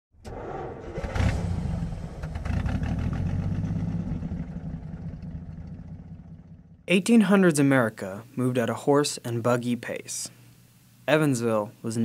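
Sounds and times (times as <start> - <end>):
car engine starting and revving: 0.2 - 6.7.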